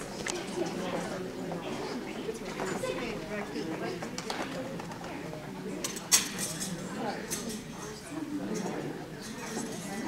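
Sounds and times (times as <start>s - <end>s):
voices murmuring in echoing hall: 0.0s - 10.0s.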